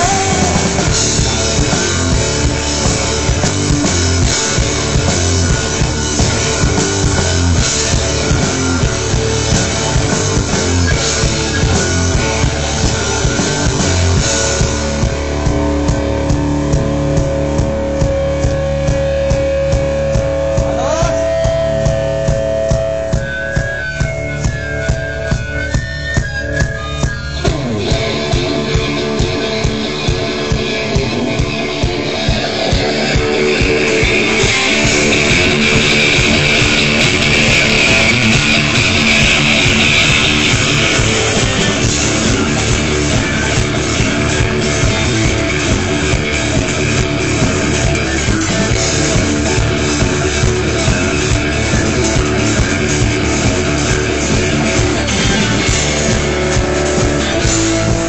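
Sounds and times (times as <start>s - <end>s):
bass guitar: 0.0s - 58.0s
drum beat: 0.0s - 58.0s
electric guitar: 0.0s - 58.0s.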